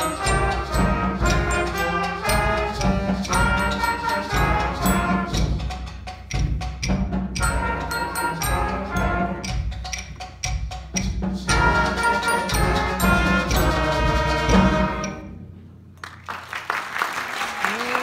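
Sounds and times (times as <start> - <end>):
woodwinds and brass: 0.0 - 5.7, 7.4 - 9.6, 11.4 - 15.5
percussion keeping a beat: 0.0 - 15.4.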